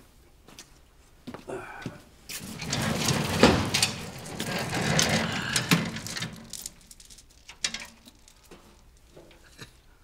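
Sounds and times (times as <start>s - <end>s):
clattering knocks: 2.5s - 6.6s.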